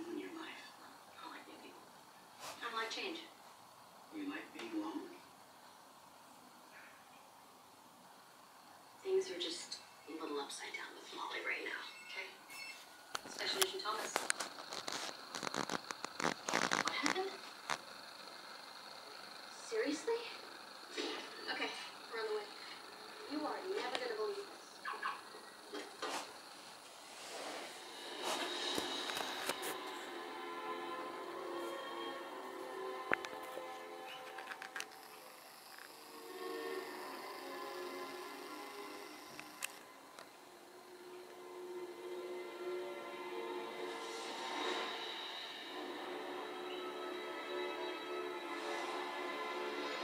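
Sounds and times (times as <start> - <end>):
television soundtrack music: 0.0 - 50.0.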